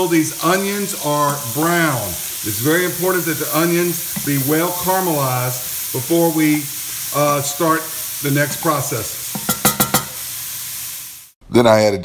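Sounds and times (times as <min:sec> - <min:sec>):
vegetables sizzling in a pot: 0:00.0 - 0:11.4.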